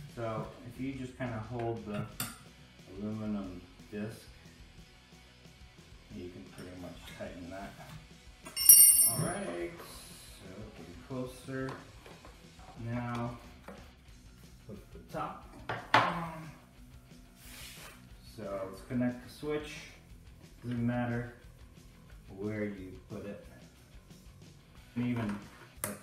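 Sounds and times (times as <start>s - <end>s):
background music with singing: 0.0s - 26.0s
metallic clink: 8.5s - 9.4s.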